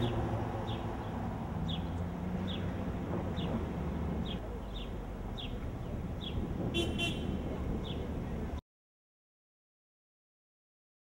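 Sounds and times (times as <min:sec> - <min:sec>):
traffic rumble: 0:00.0 - 0:08.6
car horn toots: 0:06.7 - 0:07.4.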